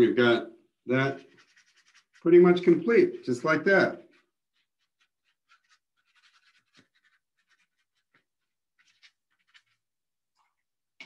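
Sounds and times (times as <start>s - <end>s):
faint small clicks and scratches: 1.1s - 3.4s, 4.0s - 10.6s.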